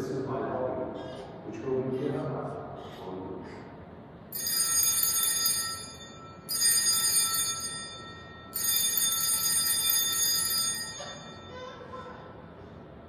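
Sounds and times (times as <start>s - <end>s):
altar bells ringing: 4.3s - 12.1s.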